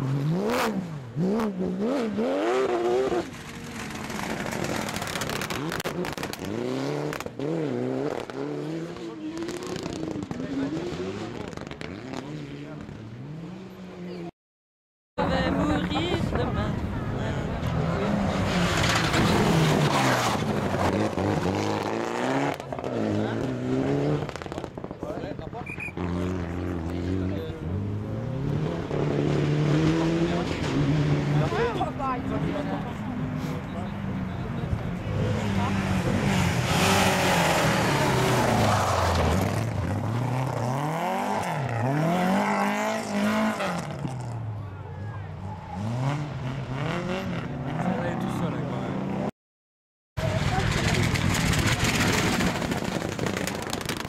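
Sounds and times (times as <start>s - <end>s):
rally car engine revving: 0.0s - 14.3s, 17.3s - 25.1s, 25.7s - 44.4s, 45.7s - 49.3s
exhaust pops and cracks: 50.2s - 54.0s.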